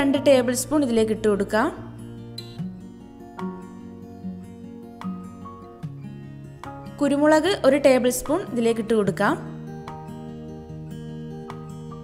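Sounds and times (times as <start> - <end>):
soft acoustic guitar melody: 0.0 - 12.0.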